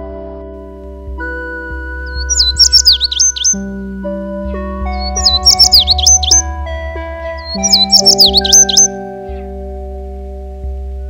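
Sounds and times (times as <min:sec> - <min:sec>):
soft held music chords: 0:00.0 - 0:11.0
high chirping bird phrase: 0:02.0 - 0:03.7, 0:04.9 - 0:09.5.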